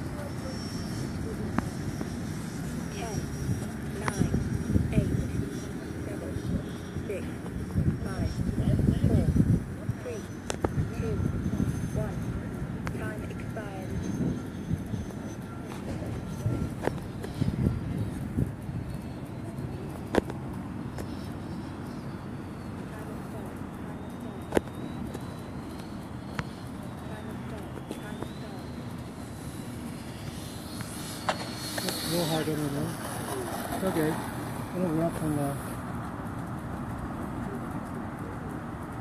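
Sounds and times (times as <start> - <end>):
electric ducted fan whine: 0.0 - 39.0
steady low rumble: 0.0 - 39.0.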